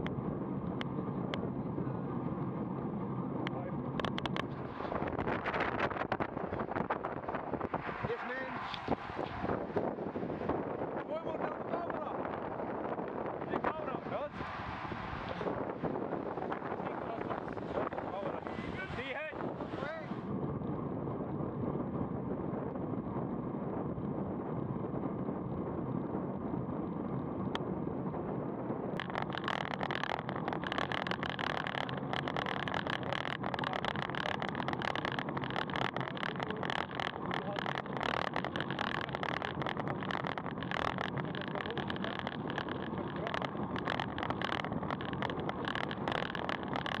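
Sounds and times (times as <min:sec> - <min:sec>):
bike tyre noise: 0:00.0 - 0:47.0
wind buffeting microphone: 0:00.0 - 0:47.0.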